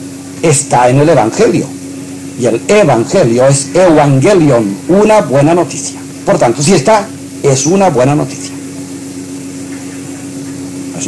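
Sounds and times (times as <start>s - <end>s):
electrical hum with hiss: 0.0s - 11.0s.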